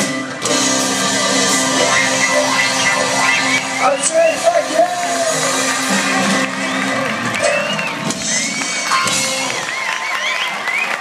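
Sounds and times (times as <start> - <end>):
live band holding final notes: 0.0 - 10.0
crowd cheering and whooping: 0.0 - 11.0.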